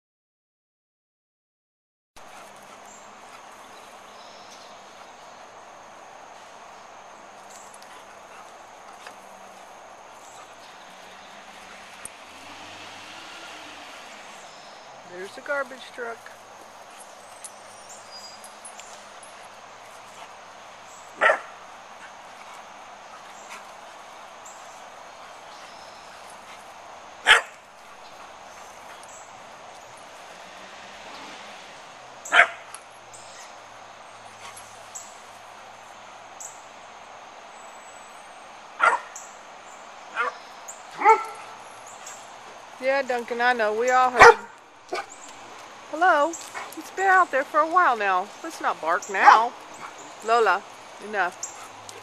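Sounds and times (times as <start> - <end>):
dog barking: 21.2 - 21.6, 27.2 - 27.6, 32.3 - 32.6, 38.8 - 39.1, 40.2 - 40.4, 41.0 - 41.6, 44.2 - 45.1.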